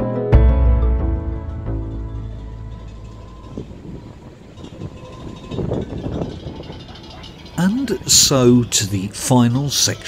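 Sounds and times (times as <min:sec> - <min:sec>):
soundtrack music: 0:00.0 - 0:03.8
ship deck rumble: 0:01.1 - 0:09.9.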